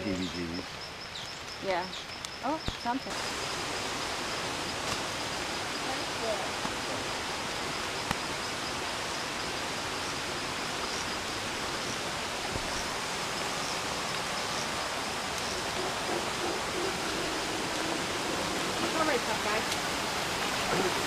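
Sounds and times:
stream flowing over rocks: 3.0s - 21.0s.

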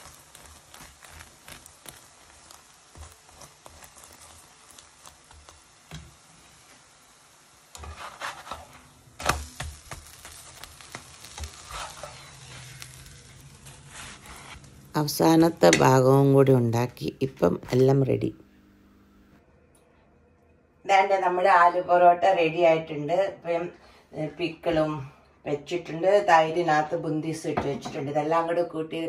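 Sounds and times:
spoon spreading ghee: 0.0s - 5.8s
ghee sizzling and crackling in pan: 0.0s - 16.1s
utensils scraping pan: 7.8s - 9.4s, 11.3s - 13.0s.

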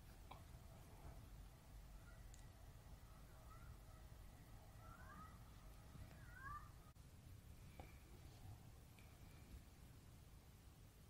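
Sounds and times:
faint low room rumble: 0.0s - 11.0s.

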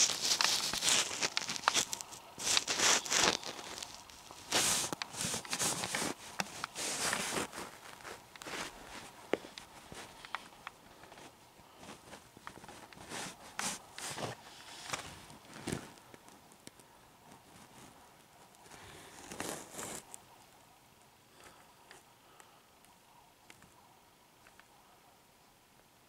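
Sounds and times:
socked foot shuffling on wood: 0.0s - 16.0s.

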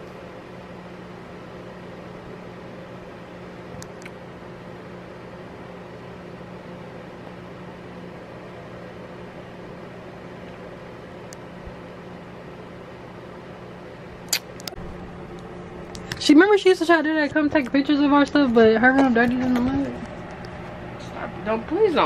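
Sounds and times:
low mechanical hum: 0.0s - 22.0s.

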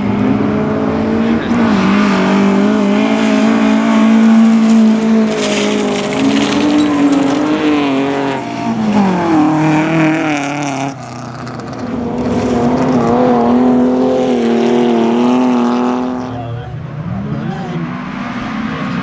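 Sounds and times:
race car engines running hard: 0.0s - 19.0s.

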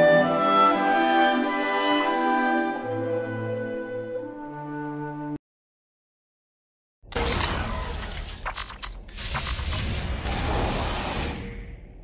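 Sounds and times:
sharp mechanical clicks: 7.1s - 10.6s.

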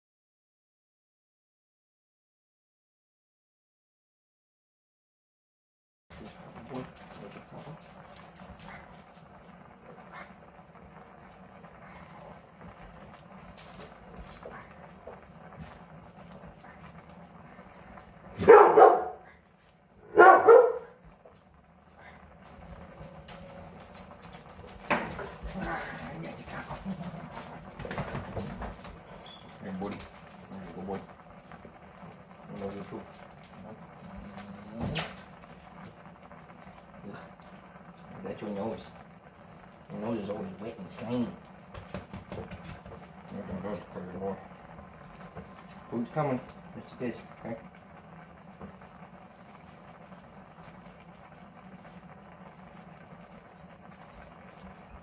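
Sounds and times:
dog barking: 18.4s - 19.3s, 20.0s - 21.0s.

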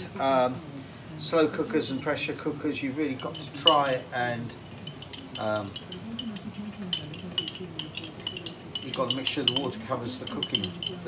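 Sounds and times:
glass jar rattling when shaken: 3.1s - 11.0s.

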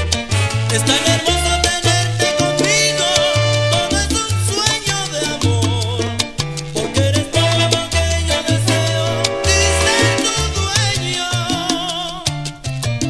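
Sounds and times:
salsa band music: 0.0s - 13.0s.

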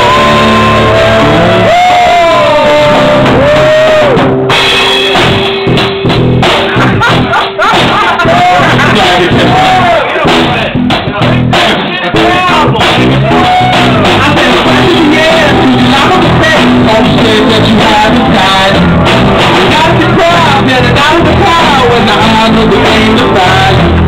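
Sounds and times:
drum kit: 0.0s - 24.0s
rock band playing: 0.0s - 24.0s
sliding lead melody: 0.0s - 24.0s.

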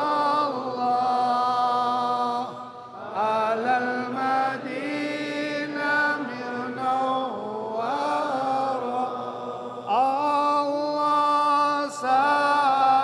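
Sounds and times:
person chanting devotional song: 0.0s - 13.0s.

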